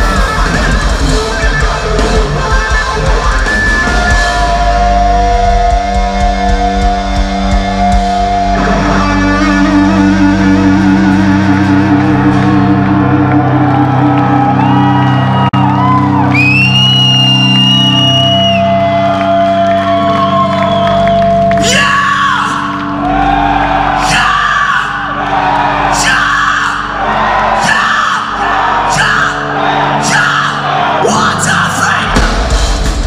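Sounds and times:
distorted guitar chord: 0:00.0 - 0:14.8
high wailing guitar line: 0:00.0 - 0:33.0
rhythmic shouts: 0:17.0 - 0:32.9.

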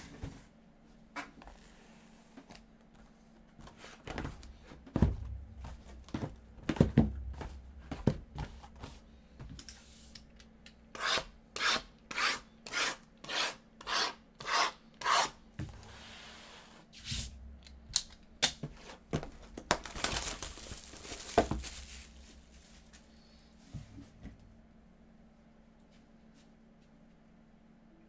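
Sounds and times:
shrink-wrap rustling: 0:18.9 - 0:23.0.

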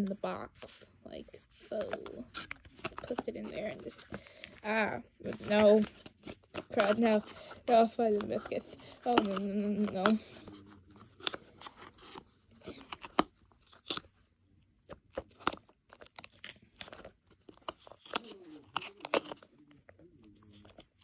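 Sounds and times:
box and packaging crinkling: 0:00.6 - 0:14.2, 0:14.8 - 0:21.0.

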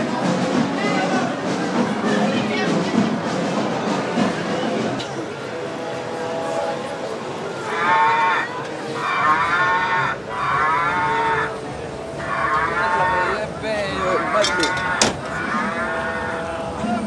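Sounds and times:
cow mooing: 0:07.7 - 0:11.6, 0:12.2 - 0:16.7.

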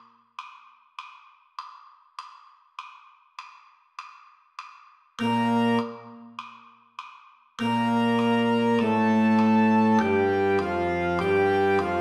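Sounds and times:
metronome clicks: 0:00.0 - 0:08.5.

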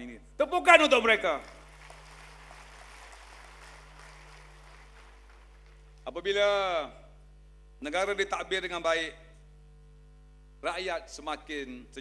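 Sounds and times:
steady low hum: 0:00.0 - 0:12.0
audience applauding: 0:01.4 - 0:06.0.

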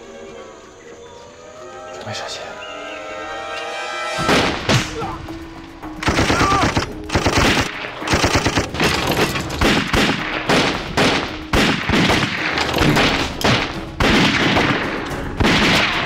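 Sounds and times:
rapid gunfire: 0:06.0 - 0:16.0.

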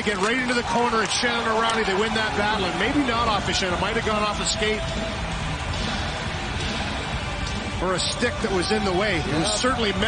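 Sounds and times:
arena crowd noise: 0:00.0 - 0:10.0
background music: 0:00.0 - 0:10.0.

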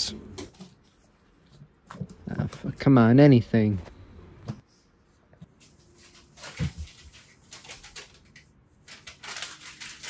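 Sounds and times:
papers and envelopes rustling: 0:05.4 - 0:10.0.

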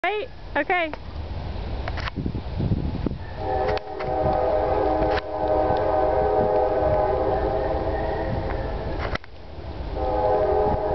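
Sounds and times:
horn sounding a chord: 0:03.4 - 0:08.4, 0:10.0 - 0:10.9.

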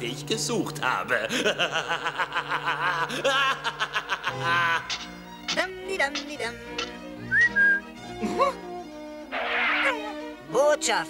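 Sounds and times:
background music: 0:00.0 - 0:11.0
short rising whistle: 0:07.3 - 0:07.8
person chuckling: 0:08.2 - 0:08.6.

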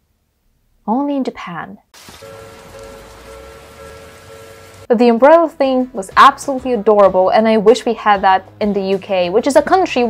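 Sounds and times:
rain falling: 0:02.0 - 0:04.9
faint sustained musical tone: 0:02.2 - 0:04.9.

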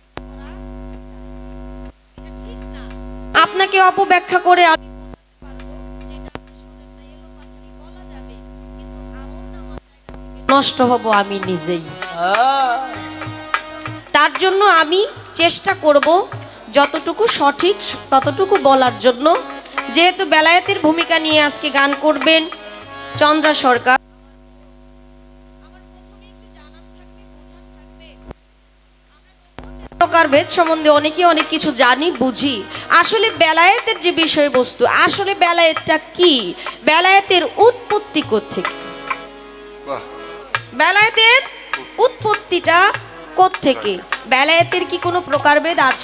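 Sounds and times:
electrical mains hum: 0:00.0 - 0:12.0, 0:14.1 - 0:46.0.

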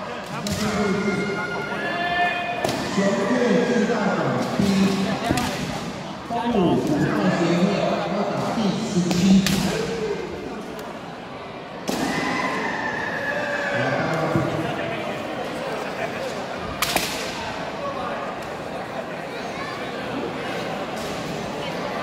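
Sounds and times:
bamboo sword strikes cracking: 0:16.8 - 0:17.3.

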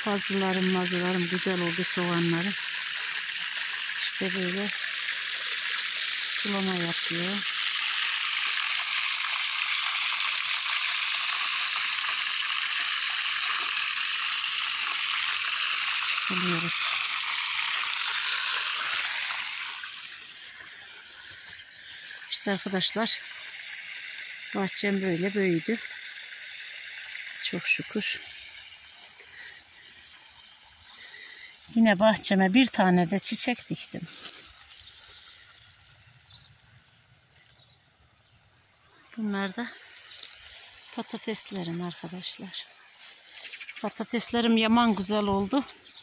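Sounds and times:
water gushing from pipe onto soil: 0:00.0 - 0:46.0.

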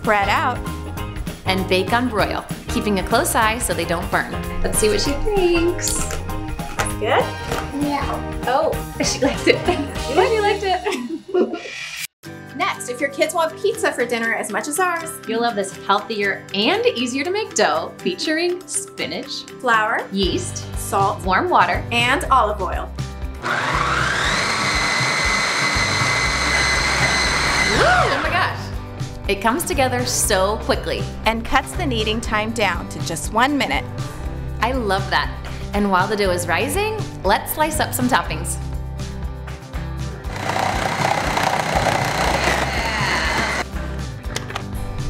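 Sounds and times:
background music: 0:00.0 - 0:45.0
food processor motor whining: 0:23.4 - 0:28.4, 0:40.3 - 0:43.6.

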